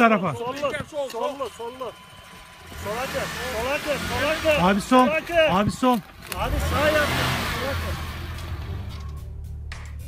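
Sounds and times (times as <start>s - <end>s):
car engine at low revs: 1.5s - 9.2s.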